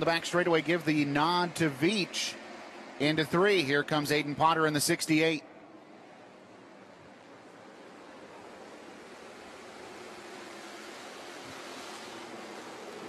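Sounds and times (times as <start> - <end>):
race cars rushing on track: 0.0 - 13.0.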